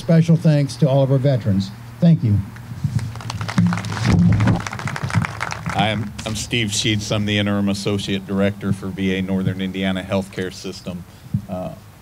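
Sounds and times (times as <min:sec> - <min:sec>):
crowd applauding: 0:02.9 - 0:06.6
man's voice: 0:05.7 - 0:11.8.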